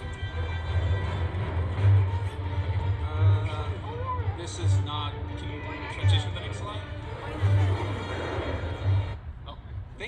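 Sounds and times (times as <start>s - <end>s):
film music: 0.0s - 9.4s.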